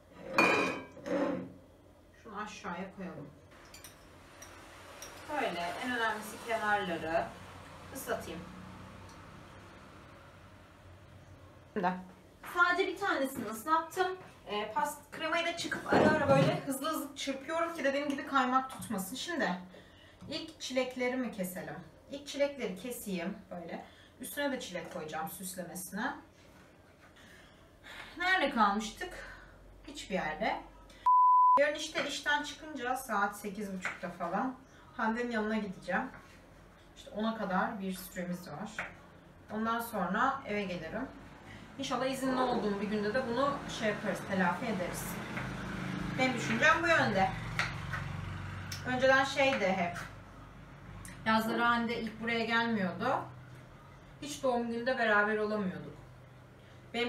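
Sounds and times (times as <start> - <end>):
glass plate clinking on table: 0.3 - 1.3
woman's voice: 2.2 - 3.4, 5.3 - 8.5, 11.7 - 26.2, 28.1 - 30.7, 31.6 - 36.2, 39.5 - 41.2, 41.8 - 45.2, 46.2 - 47.5, 48.8 - 50.2, 51.1 - 53.4, 54.2 - 56.0.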